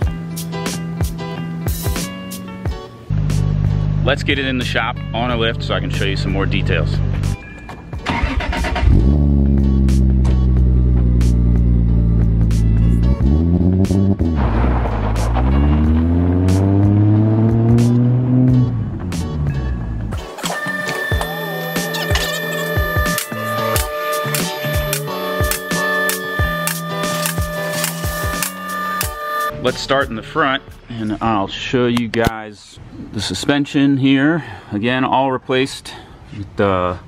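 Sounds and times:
background music with beat: 0:00.0 - 0:08.0, 0:08.8 - 0:31.0
car engine revving: 0:08.1 - 0:20.2.

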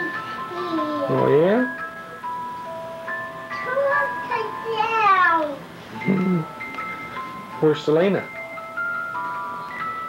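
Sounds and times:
chiming melody: 0:00.0 - 0:05.1, 0:05.9 - 0:10.0.

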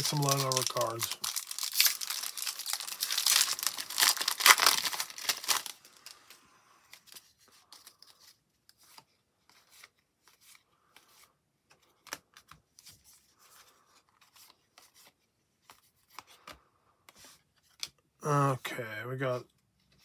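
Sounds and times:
wrapper torn and crinkled: 0:00.0 - 0:06.2
faint clicks of cards handled: 0:06.9 - 0:18.0.

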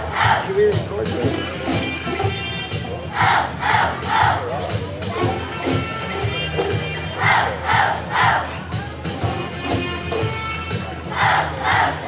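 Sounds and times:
children singing loudly: 0:11.1 - 0:12.0.

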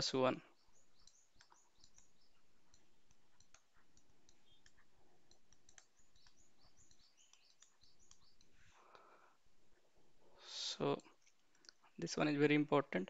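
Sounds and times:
stylus tapping on pen tablet: 0:00.6 - 0:08.6.

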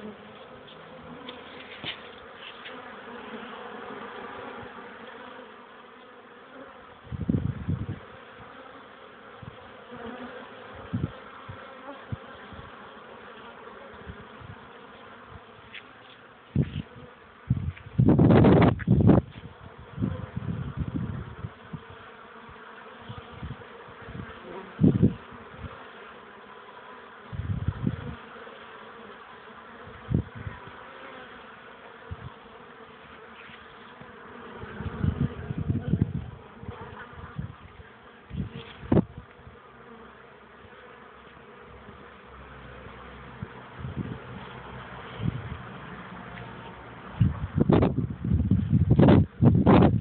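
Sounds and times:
honeybees buzzing: 0:00.0 - 0:50.0.

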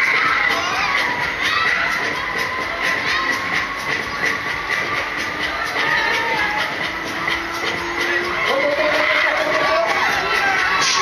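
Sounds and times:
loud dance music: 0:00.0 - 0:11.0.

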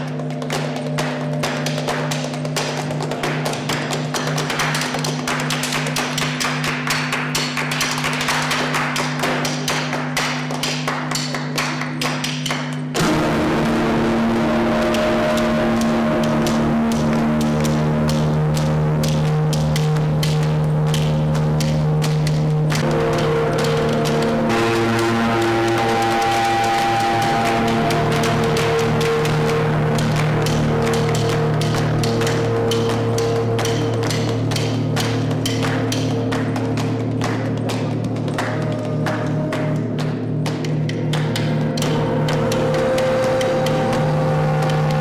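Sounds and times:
rhythmic hand-clapping: 0:00.0 - 0:45.0
electric guitar drone: 0:12.9 - 0:45.0.

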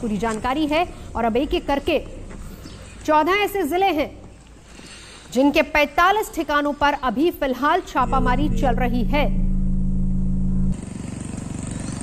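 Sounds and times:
road noise: 0:07.9 - 0:12.0
steady low hum: 0:08.0 - 0:10.8.

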